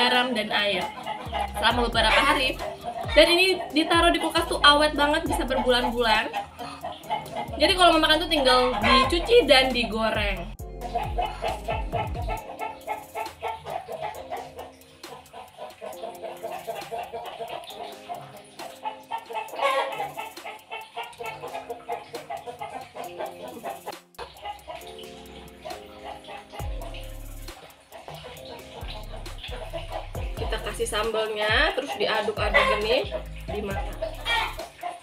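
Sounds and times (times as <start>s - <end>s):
chickens clucking: 0.0s - 9.8s, 10.7s - 35.0s
background music: 0.0s - 35.0s.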